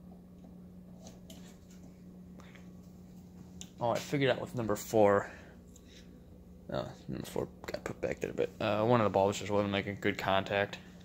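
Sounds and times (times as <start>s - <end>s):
fluorescent ballast hum: 0.0s - 11.0s.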